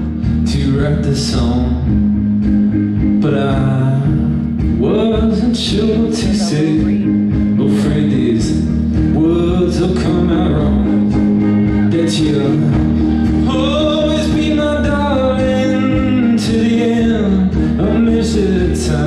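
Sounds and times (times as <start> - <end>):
man singing: 0.0 - 2.1, 2.9 - 19.0
acoustic guitar: 0.0 - 19.0
drums: 0.0 - 19.0.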